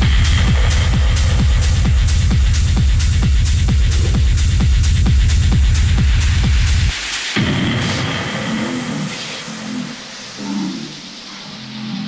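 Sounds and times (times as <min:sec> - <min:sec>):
low synth bass line: 0:00.0 - 0:07.5
hissing noise wash: 0:00.0 - 0:12.0.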